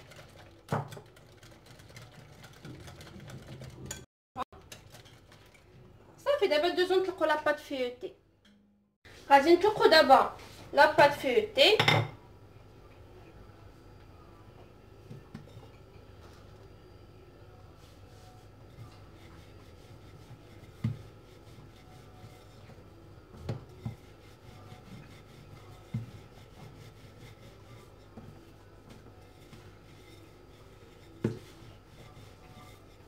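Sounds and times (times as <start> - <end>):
rolling pin rubbing on pastry: 17.6 - 33.0.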